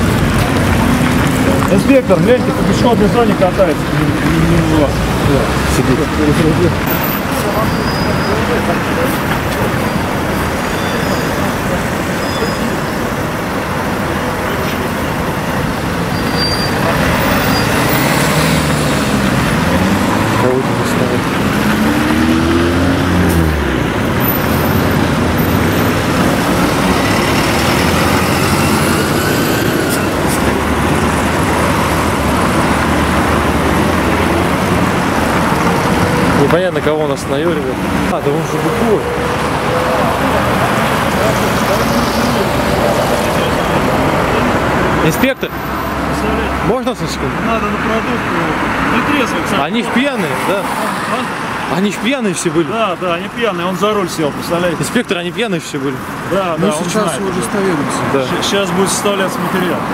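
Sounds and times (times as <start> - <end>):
cars and buses passing: 0.0 - 59.9.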